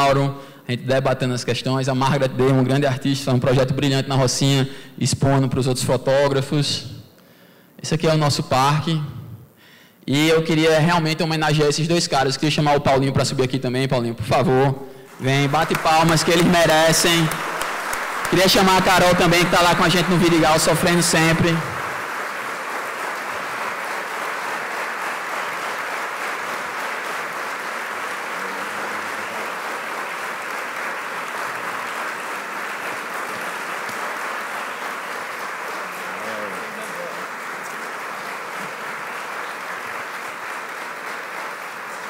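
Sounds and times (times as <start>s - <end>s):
audience applauding: 15.0s - 42.0s.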